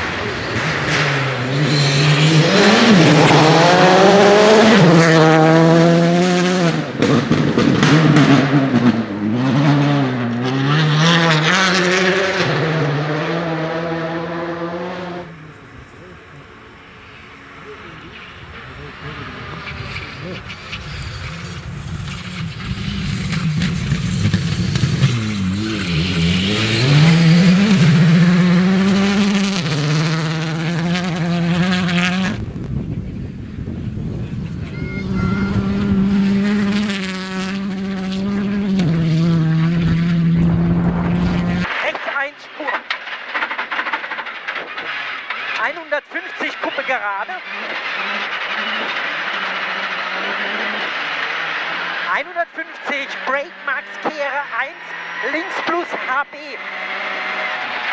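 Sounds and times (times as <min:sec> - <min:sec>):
rally car engine revving: 0:00.0 - 0:57.9
thin engine noise: 0:00.0 - 0:57.9.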